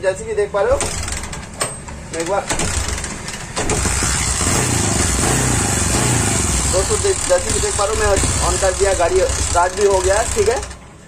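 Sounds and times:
motorcycle engine running: 2.7 - 10.8.

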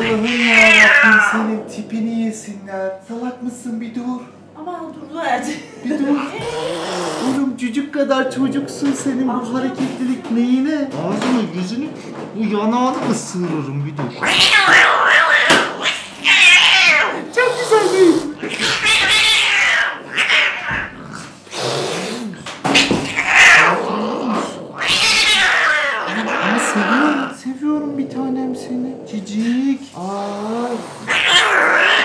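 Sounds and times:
cat yowling: 0.0 - 1.7, 14.2 - 17.3, 18.4 - 21.0, 22.7 - 27.4, 31.1 - 32.0.

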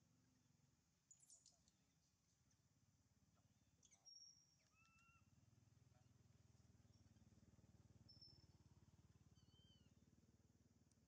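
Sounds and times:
faint low hum: 0.0 - 11.0
high thin animal calls: 4.6 - 5.3.

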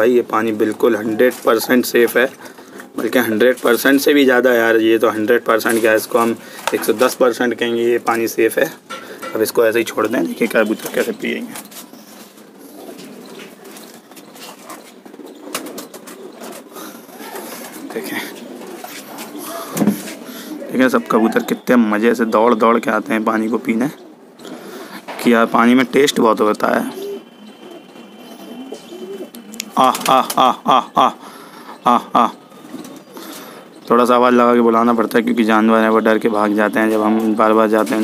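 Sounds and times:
pigeons cooing: 0.0 - 38.0
man calling out: 29.7 - 31.2.

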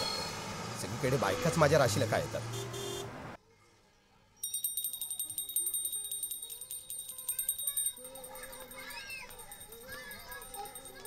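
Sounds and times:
small brass hand bell ringing: 4.4 - 11.0.

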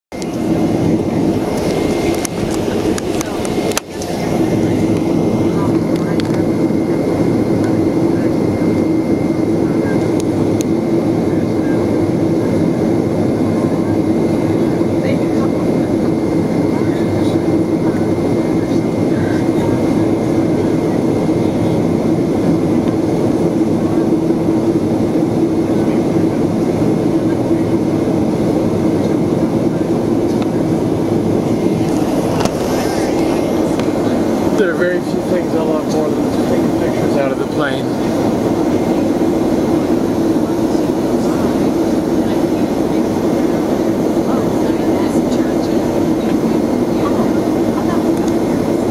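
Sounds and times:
airplane engine drone in cabin: 0.1 - 48.9
constant hum: 0.1 - 48.9.

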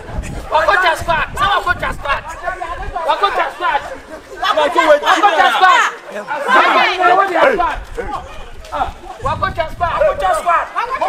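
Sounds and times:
people talking loudly: 0.0 - 11.0.

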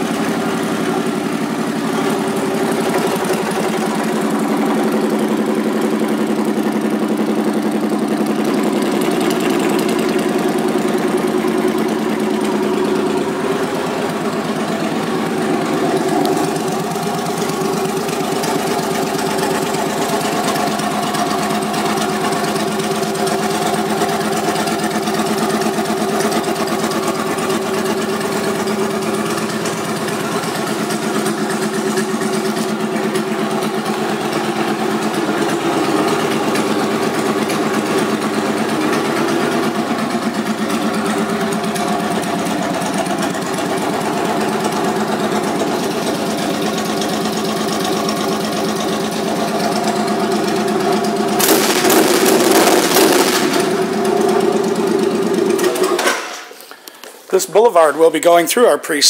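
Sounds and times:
motorcycle engine idling: 0.0 - 57.0.

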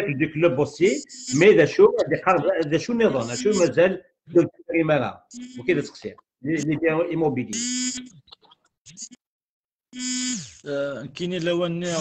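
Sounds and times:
person talking over video call: 0.0 - 9.2, 10.6 - 12.0.

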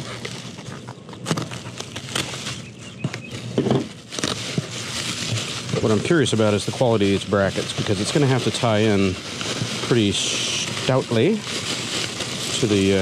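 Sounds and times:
bubble wrap crinkling: 0.0 - 13.0.

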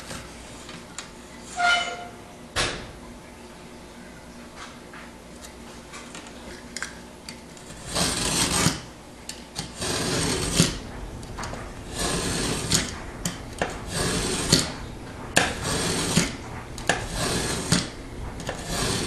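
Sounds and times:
utility knife scraping sheetrock: 7.6 - 8.9, 9.6 - 10.8, 11.8 - 13.0, 13.6 - 14.7, 15.4 - 19.0.

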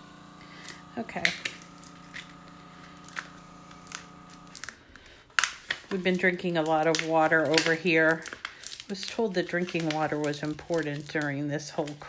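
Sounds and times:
water cooler humming: 0.0 - 12.0
taps and rustles of paper: 1.1 - 12.0.

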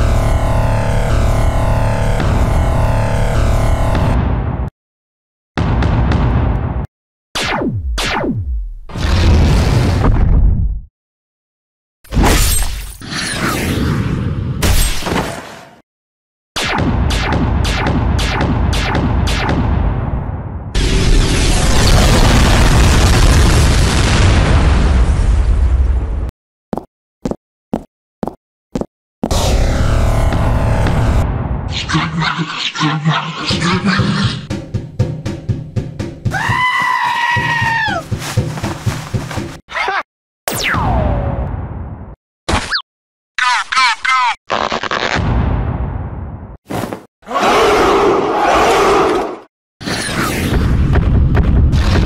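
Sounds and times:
cartoon explosion: 20.8 - 25.7.

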